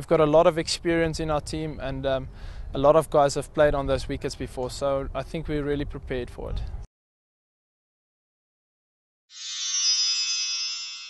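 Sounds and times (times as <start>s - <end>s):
electronic music sting: 9.4s - 11.0s.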